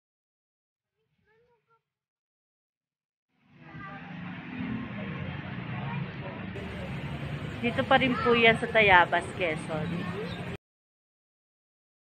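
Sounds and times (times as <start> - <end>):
steady low hum: 6.6 - 8.0.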